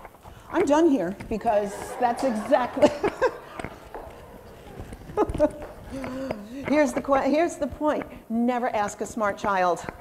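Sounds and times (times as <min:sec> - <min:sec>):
woman laughing: 0:01.4 - 0:07.0.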